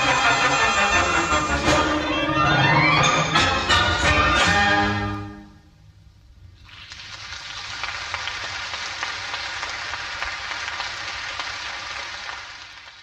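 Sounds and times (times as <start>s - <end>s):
tape recording noise: 2.9s - 11.2s
audience applause: 6.7s - 13.0s.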